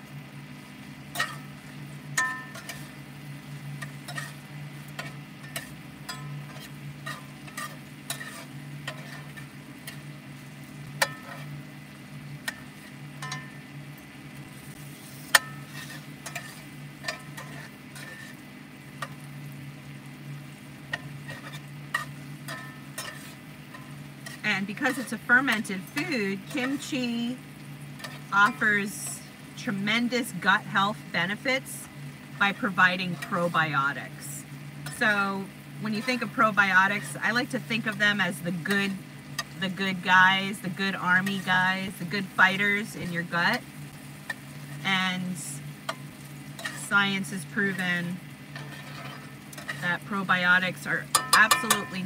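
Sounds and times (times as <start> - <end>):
low hum: 0.0 - 52.0
vegetables frying: 0.0 - 52.0
metal spatula scraping pan: 1.1 - 3.0, 3.7 - 10.1, 11.0 - 11.6, 15.0 - 19.2, 20.9 - 27.3, 28.0 - 29.3, 35.9 - 38.8, 45.9 - 52.0.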